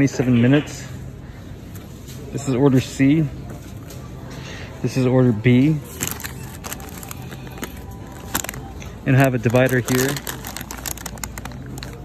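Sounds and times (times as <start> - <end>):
items shifting in a wire cart: 5.8 - 12.0
plastic packaging crackling: 5.8 - 12.0.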